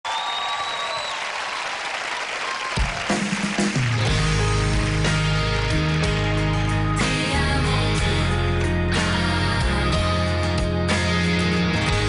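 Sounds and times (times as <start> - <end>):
audience applauding and cheering: 0.0 - 7.4
instrumental intro with low notes: 3.8 - 12.0.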